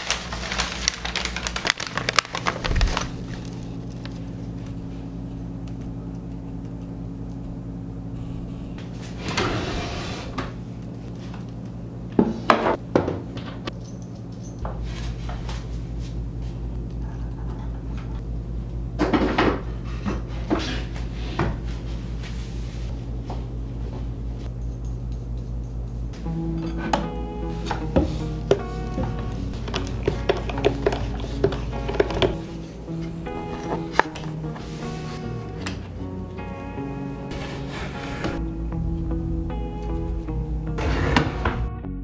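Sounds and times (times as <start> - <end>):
packing paper crinkling: 0.0 - 4.9.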